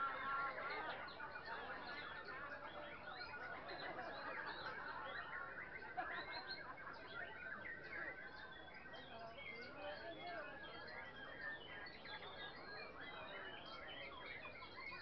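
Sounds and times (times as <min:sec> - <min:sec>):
caged songbirds singing: 0:00.0 - 0:15.0.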